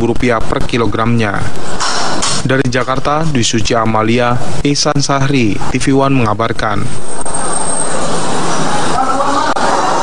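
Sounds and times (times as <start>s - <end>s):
loud rushing noise: 6.9s - 10.0s.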